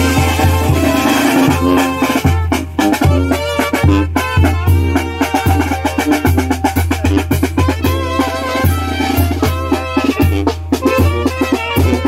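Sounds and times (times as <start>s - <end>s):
bass drum beating: 0.0s - 12.0s
brass melody: 0.0s - 12.0s.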